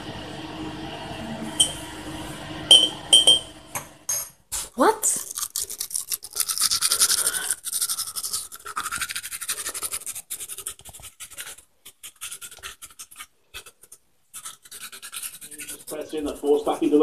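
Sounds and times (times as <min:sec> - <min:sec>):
toothbrush scrubbing teeth: 0:04.6 - 0:17.0.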